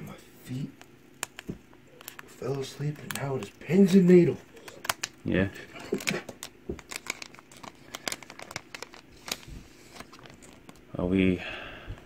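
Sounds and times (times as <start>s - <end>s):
foil wrapper crinkling: 1.2s - 11.0s
foil wrapper tearing: 5.8s - 10.8s.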